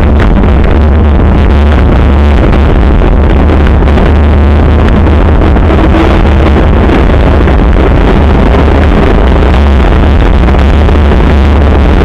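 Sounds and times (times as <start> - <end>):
road and tyre noise: 0.0 - 12.0
wind rumble on microphone: 0.0 - 12.0.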